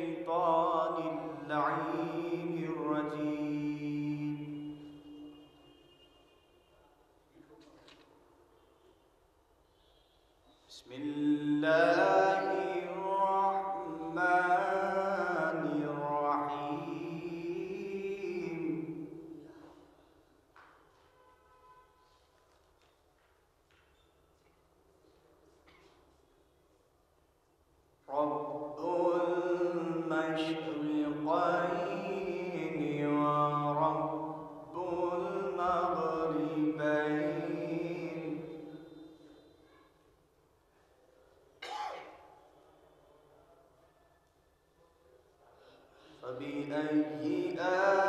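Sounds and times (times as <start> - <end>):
man chanting recitation: 0.0 - 5.5, 10.6 - 19.9, 28.1 - 39.4, 46.1 - 48.0.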